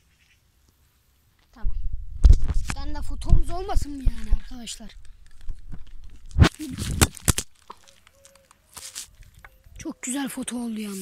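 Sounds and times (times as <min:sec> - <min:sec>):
plastic bag crinkling: 0:03.8 - 0:09.4.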